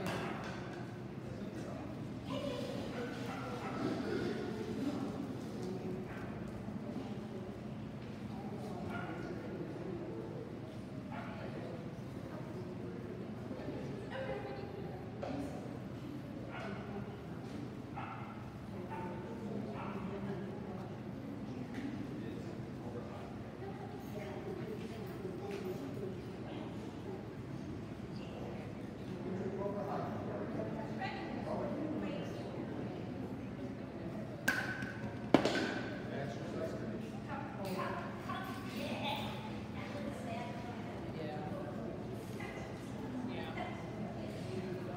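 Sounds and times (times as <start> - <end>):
murmur of echoing voices: 0.0 - 44.9
dog barking: 18.0 - 19.0.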